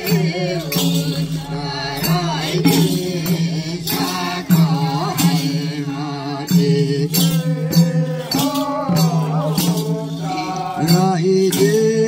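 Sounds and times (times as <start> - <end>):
hand drums: 0.0 - 12.0
voices singing together: 0.0 - 12.0.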